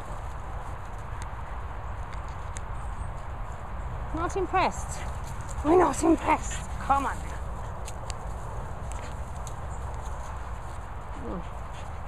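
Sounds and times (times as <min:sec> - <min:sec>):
footsteps on grass: 0:00.0 - 0:12.0
wind rumble on microphone: 0:00.0 - 0:12.0.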